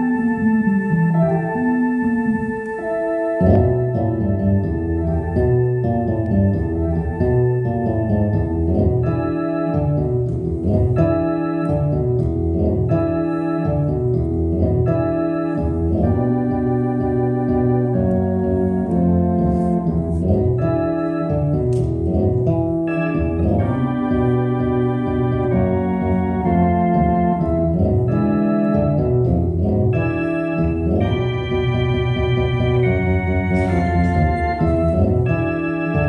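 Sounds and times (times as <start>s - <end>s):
blues on electronic organ: 0.0s - 36.0s
moving bass line: 0.0s - 36.0s.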